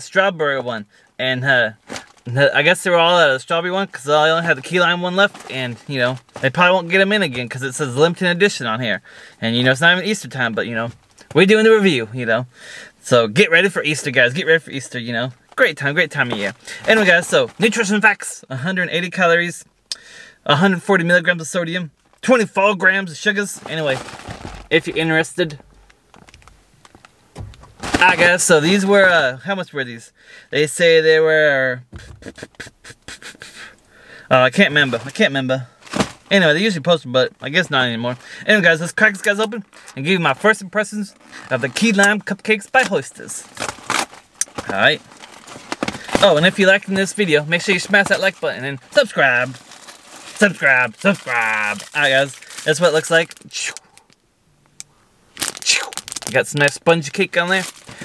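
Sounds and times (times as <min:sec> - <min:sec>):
plastic wrapper crinkling: 0:01.8 - 0:02.3, 0:04.4 - 0:06.7, 0:23.4 - 0:29.2, 0:34.8 - 0:36.3, 0:42.8 - 0:54.2, 0:55.3 - 0:58.0
rustling thump: 0:23.6 - 0:25.0, 0:25.6 - 0:28.6, 0:31.9 - 0:32.3, 0:35.8 - 0:36.3.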